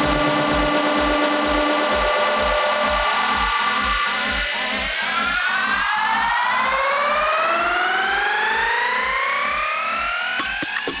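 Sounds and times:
steady kick drum: 0:00.0 - 0:11.0
synth riser sweeping upward: 0:00.0 - 0:11.0.

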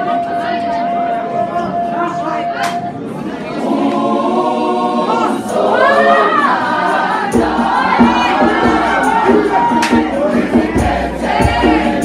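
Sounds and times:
youth choir singing in harmony: 0:00.0 - 0:12.0.

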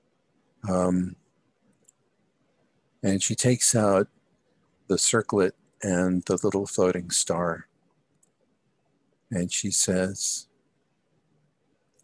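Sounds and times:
man saying um: 0:00.7 - 0:01.1, 0:03.0 - 0:04.0, 0:04.9 - 0:07.6, 0:09.3 - 0:10.4.

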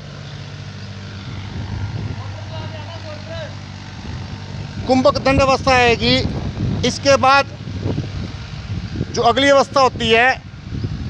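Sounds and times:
motor humming: 0:00.0 - 0:11.0.

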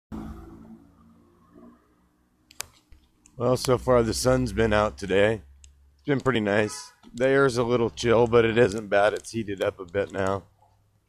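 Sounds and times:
vehicle engine passing: 0:00.1 - 0:02.4.

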